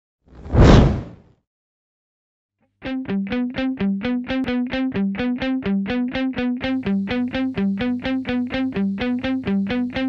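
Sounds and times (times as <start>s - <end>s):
whoosh: 0.4s - 1.2s.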